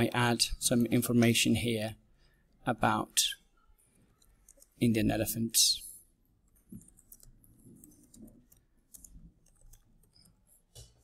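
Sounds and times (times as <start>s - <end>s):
keyboard typing: 3.9s - 4.8s, 6.3s - 11.0s.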